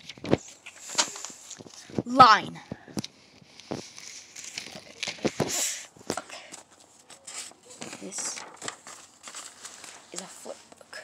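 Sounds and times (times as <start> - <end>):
notebook pages rustling: 0.0 - 2.0, 3.0 - 10.8
paper crinkles: 3.0 - 11.0.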